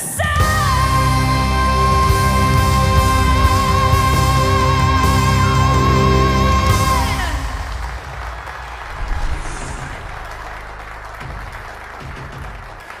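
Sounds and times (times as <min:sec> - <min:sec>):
audience applause: 0:07.3 - 0:13.0.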